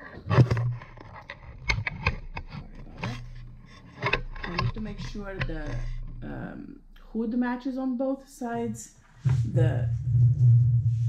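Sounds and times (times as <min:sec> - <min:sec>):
low hum: 0:00.5 - 0:07.0, 0:09.0 - 0:11.0
rubbing and scraping on mat: 0:09.0 - 0:11.0.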